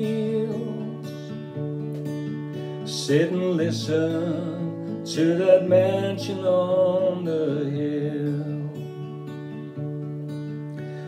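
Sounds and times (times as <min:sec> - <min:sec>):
man singing: 0:00.0 - 0:01.4, 0:02.8 - 0:09.0
acoustic guitar strumming: 0:00.0 - 0:11.0.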